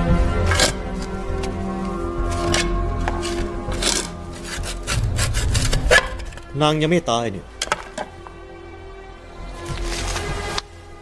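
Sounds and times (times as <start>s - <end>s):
low rumble: 0.0s - 9.5s
rasping strokes on wood: 2.4s - 6.2s.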